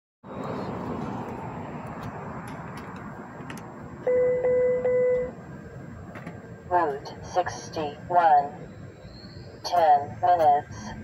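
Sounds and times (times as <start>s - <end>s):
outdoor background rush: 0.2s - 11.0s.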